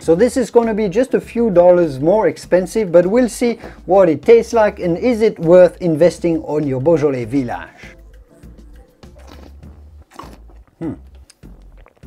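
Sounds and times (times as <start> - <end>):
person slurping wine: 8.3 - 12.0
short vocal sounds: 9.0 - 11.4.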